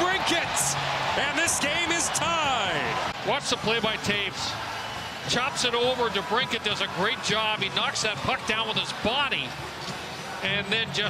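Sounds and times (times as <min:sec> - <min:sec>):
sports commentator talking: 0:00.0 - 0:04.6, 0:05.3 - 0:09.5, 0:10.4 - 0:11.0.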